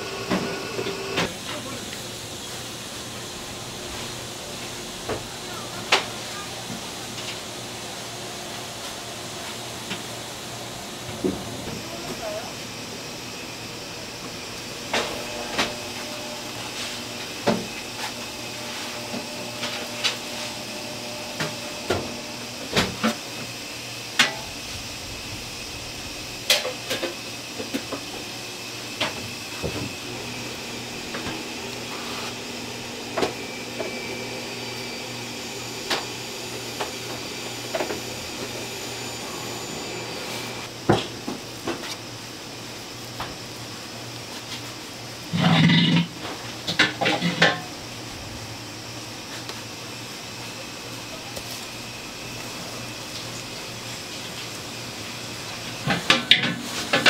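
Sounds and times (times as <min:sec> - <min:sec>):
steady hum: 0:00.0 - 0:57.0.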